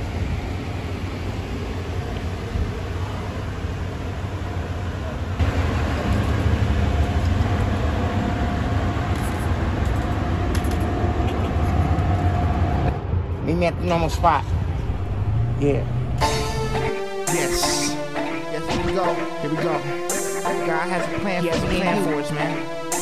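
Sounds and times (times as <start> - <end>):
low rumble: 9.8 - 16.8.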